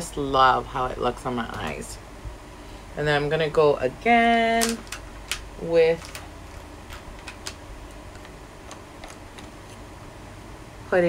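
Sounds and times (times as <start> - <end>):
makeup containers clicking: 4.6 - 9.8.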